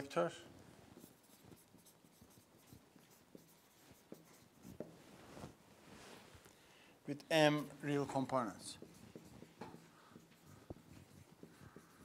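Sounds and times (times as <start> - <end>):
marker pen squeaking on whiteboard: 1.0 - 5.0, 7.9 - 12.0.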